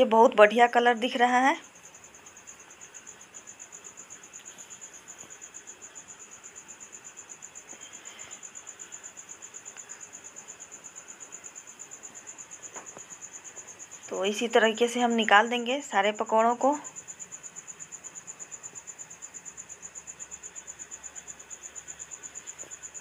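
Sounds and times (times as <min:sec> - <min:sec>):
crickets chirping: 0:00.0 - 0:23.0.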